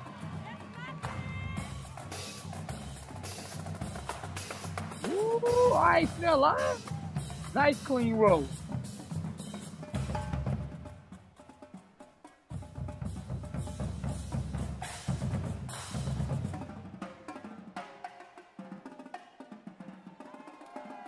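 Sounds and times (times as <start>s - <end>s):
snare and tenor drum strokes: 1.8s - 18.2s.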